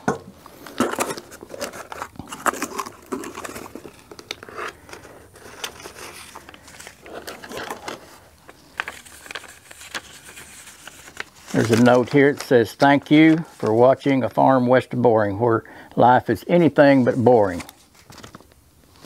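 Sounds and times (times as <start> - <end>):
paper rustling: 0.6 - 14.5, 16.6 - 19.0.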